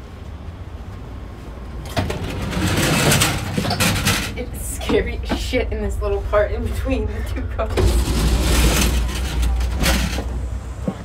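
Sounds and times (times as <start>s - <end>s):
train rumble and rushing: 0.0s - 11.0s.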